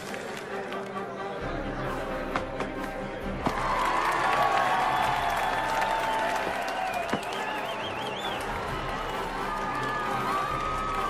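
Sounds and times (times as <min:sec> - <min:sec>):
music playing: 0:00.0 - 0:11.0
crowd cheering and clapping: 0:03.4 - 0:11.0.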